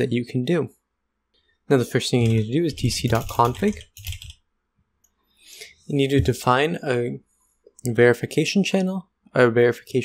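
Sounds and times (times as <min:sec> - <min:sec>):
person speaking: 0:01.7 - 0:04.2, 0:05.5 - 0:10.0
computer keyboard keystrokes: 0:02.2 - 0:04.4.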